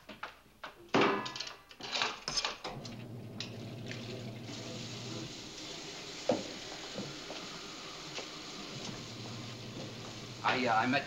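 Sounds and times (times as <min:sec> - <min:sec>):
water hissing in washing machine: 0:02.8 - 0:11.0.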